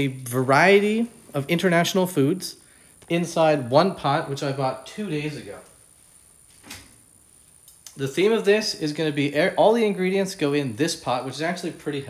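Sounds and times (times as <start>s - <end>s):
small clicks: 7.6s - 8.0s.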